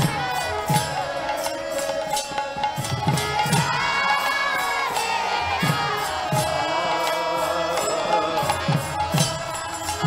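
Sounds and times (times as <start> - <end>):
crowd chanting: 0.0 - 10.0
harmoniums: 0.0 - 10.0.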